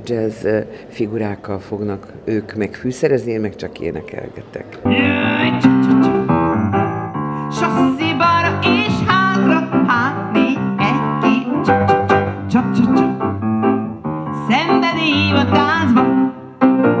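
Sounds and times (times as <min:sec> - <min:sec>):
piano accompaniment: 0:04.8 - 0:17.0
woman singing into a microphone: 0:04.9 - 0:06.0, 0:07.5 - 0:11.8, 0:12.4 - 0:13.2, 0:14.4 - 0:16.2.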